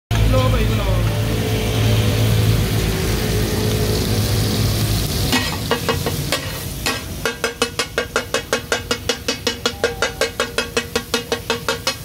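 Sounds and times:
meat sizzling on a griddle: 0:00.5 - 0:12.0
metal spatulas clanking on griddle: 0:05.3 - 0:12.0.

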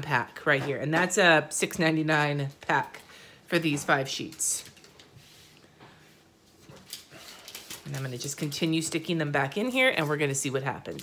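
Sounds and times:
plastic sleeve rustling: 0:04.0 - 0:11.0.

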